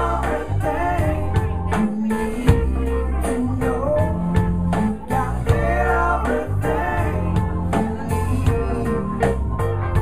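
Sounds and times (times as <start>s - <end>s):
man singing: 0.0s - 9.4s
drum kit beat: 0.0s - 10.0s
electric guitars and bass: 0.0s - 10.0s.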